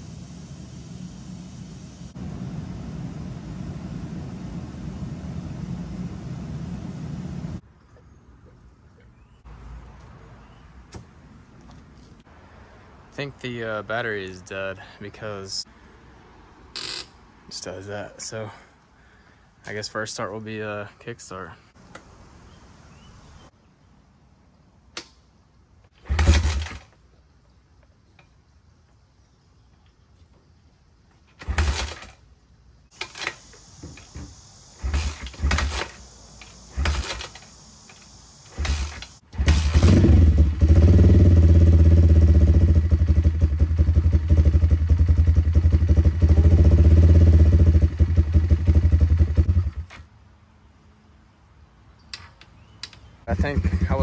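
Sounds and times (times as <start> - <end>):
motorbike kickstart kicks: 26.0 - 26.9, 31.4 - 32.2, 33.0 - 40.4
motorbike engine running: 38.6 - 49.8, 53.3 - 54.0.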